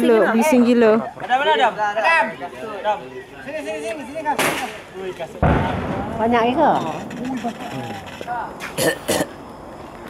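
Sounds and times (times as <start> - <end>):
sharp explosive crack: 4.3 - 4.8, 5.4 - 7.1
deep heavy boom: 5.4 - 7.1.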